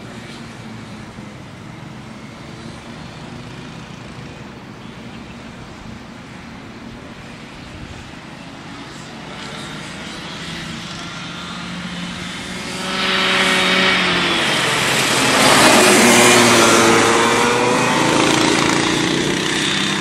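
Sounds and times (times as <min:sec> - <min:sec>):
kart engines running: 0:00.0 - 0:20.0.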